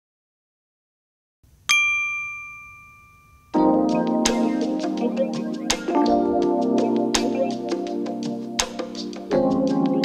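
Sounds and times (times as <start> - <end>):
bright ringing ding: 1.7 - 3.6
intro music: 3.5 - 10.0.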